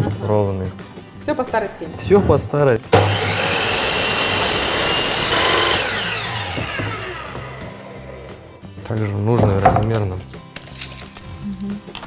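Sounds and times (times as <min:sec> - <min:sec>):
saw blade winding down whine: 0:03.0 - 0:08.3
mitre saw cutting wood: 0:03.0 - 0:08.5.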